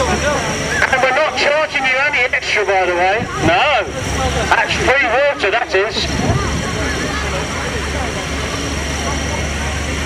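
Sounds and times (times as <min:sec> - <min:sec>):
faint voices: 0:00.0 - 0:10.0
fire pump engine droning: 0:00.0 - 0:10.0.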